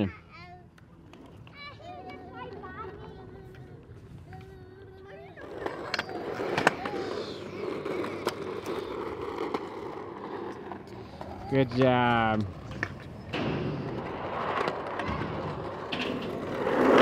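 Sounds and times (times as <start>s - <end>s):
faint children's voices: 0.0s - 10.4s, 13.9s - 17.0s
wheels rolling over concrete: 0.8s - 17.0s
wheels clicking over joints: 1.1s - 17.0s.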